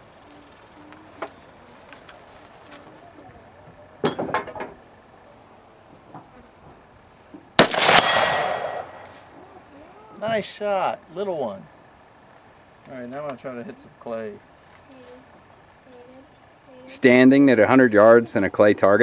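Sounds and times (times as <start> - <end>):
bullet ringing steel target: 7.6 - 9.1
rifle shot with echo: 7.6 - 9.1.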